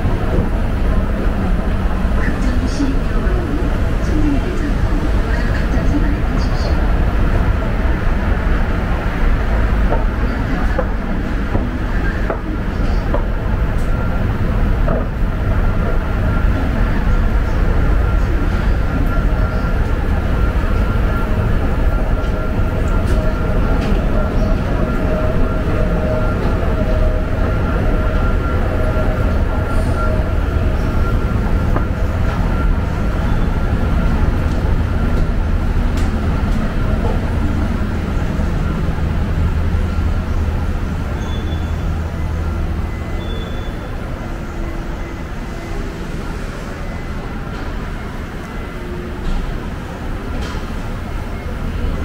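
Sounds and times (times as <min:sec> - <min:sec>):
thin steady whine: 0:00.0 - 0:52.0
train rumbling: 0:00.0 - 0:52.0.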